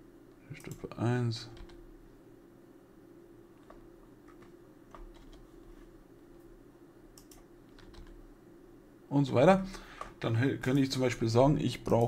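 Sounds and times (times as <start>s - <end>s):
low steady hum: 0.0s - 12.0s
keyboard typing: 1.5s - 1.8s, 3.6s - 5.7s, 7.2s - 8.2s.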